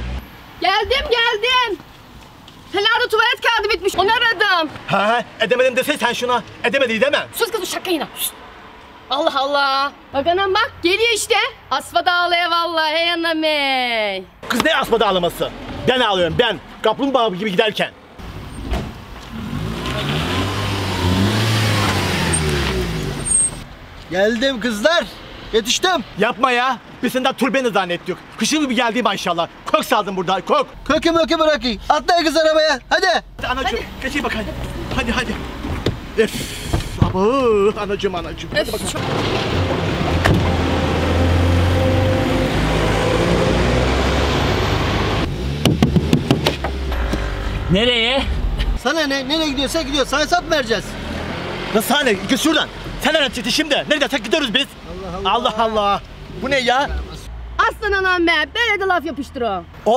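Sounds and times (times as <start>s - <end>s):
vehicle engine rumbling: 17.9s - 27.0s, 29.2s - 58.6s
car passing by: 18.4s - 23.6s, 38.5s - 53.8s
sharp clicks and knocks: 45.6s - 47.3s.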